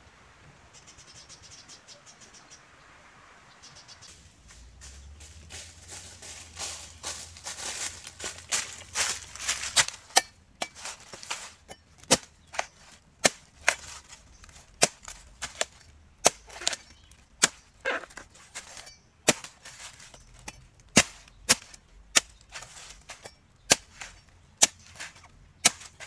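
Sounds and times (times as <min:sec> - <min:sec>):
machete chopping coconut husk: 0:07.6 - 0:26.0.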